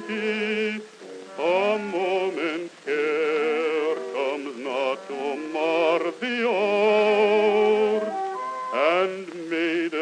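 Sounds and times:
person singing classical song: 0.0s - 10.0s.

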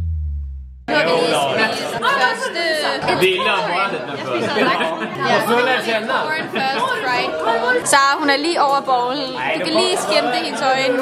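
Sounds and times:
dinner-party chatter: 0.9s - 11.0s.

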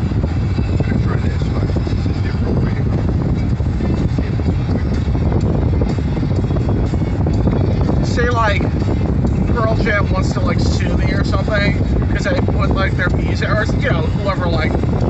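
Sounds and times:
car road and engine noise: 0.0s - 15.0s
music from car stereo: 0.0s - 15.0s.

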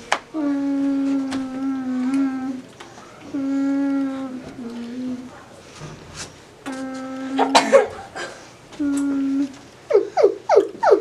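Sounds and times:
person humming: 0.3s - 2.7s, 3.3s - 5.3s, 6.6s - 7.6s, 8.8s - 10.1s.

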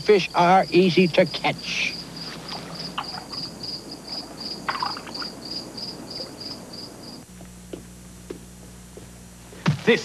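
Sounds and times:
cricket chirping: 0.0s - 7.3s.

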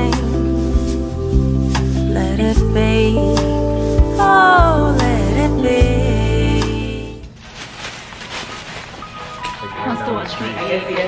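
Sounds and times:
quiet background music: 0.0s - 11.0s
people talking: 9.6s - 11.0s.

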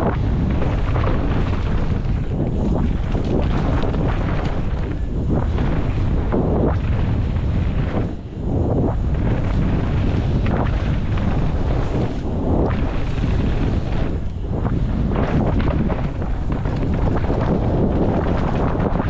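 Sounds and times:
bike rattling: 0.0s - 19.0s
wind rushing over microphone: 0.0s - 19.0s
tyres rolling over dirt and stones: 0.1s - 19.0s.

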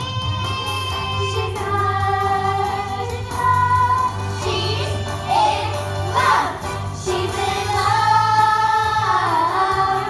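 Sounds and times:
children singing a show tune: 0.0s - 10.0s
musical accompaniment: 0.0s - 10.0s.

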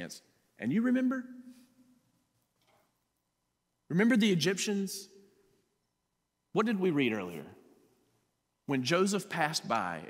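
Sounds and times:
man giving a sermon: 0.0s - 2.0s, 3.8s - 5.4s, 6.5s - 7.9s, 8.6s - 10.0s.

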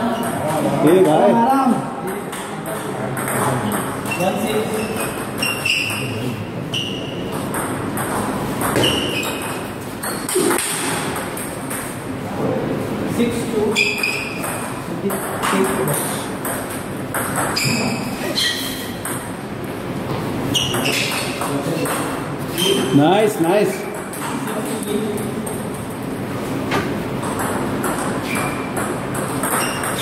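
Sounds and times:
table tennis balls clicking: 7.3s - 12.1s, 13.9s - 17.9s, 18.9s - 19.4s, 27.1s - 30.0s.

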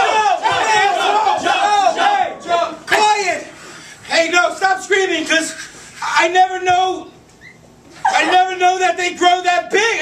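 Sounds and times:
men shouting: 0.0s - 3.5s.

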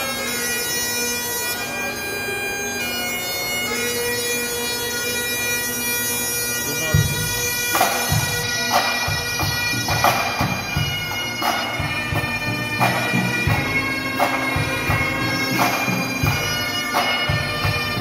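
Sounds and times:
bagpipes melody over drones: 0.0s - 18.0s
pipe band drums and snare rolls: 6.6s - 18.0s.

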